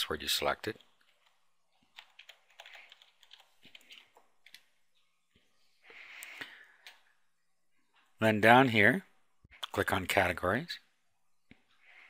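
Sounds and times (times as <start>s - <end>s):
computer keyboard typing: 0.7s - 4.7s.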